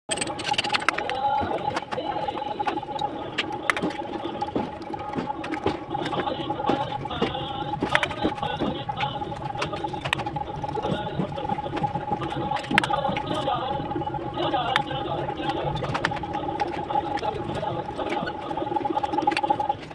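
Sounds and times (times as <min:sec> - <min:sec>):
steady high hum: 0:00.1 - 0:19.9.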